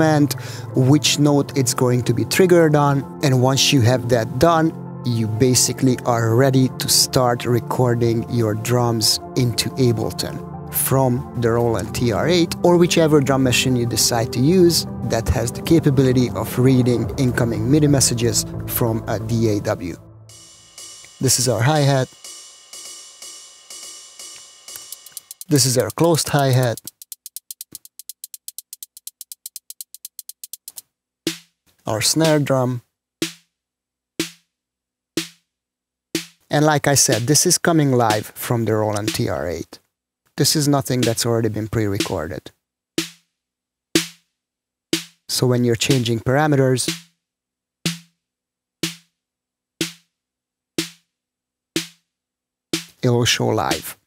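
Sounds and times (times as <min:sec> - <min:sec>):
drum machine hi-hat: 0:20.3 - 0:31.5, 0:33.2 - 0:33.4, 0:34.2 - 0:34.4, 0:35.2 - 0:35.4, 0:36.2 - 0:36.4, 0:37.0 - 0:38.2, 0:39.0 - 0:39.3, 0:41.0 - 0:41.3, 0:43.0 - 0:43.2, 0:44.0 - 0:44.2, 0:45.0 - 0:46.1, 0:46.9 - 0:47.1, 0:47.9 - 0:48.1, 0:48.8 - 0:49.0, 0:49.8 - 0:50.0, 0:50.8 - 0:51.0, 0:51.8 - 0:52.0, 0:52.8 - 0:53.0, 0:53.7 - 0:54.0.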